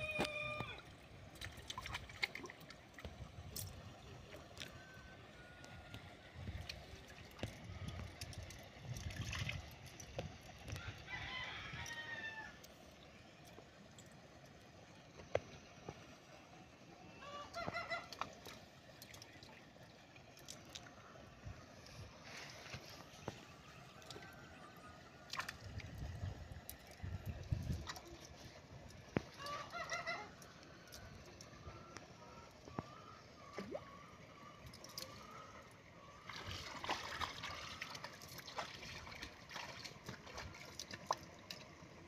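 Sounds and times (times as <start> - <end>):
rooster crowing: 0.0 - 0.8, 10.8 - 12.6.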